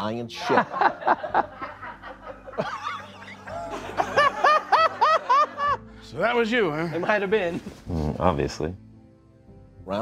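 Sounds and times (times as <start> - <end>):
soft background music: 0.0 - 10.0
people laughing: 0.4 - 5.8, 6.7 - 8.1.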